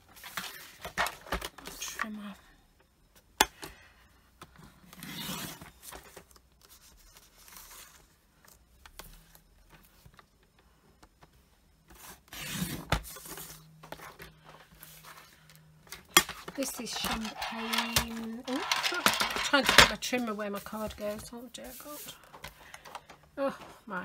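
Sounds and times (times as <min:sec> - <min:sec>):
card scraping and rustling: 0:12.0 - 0:23.1.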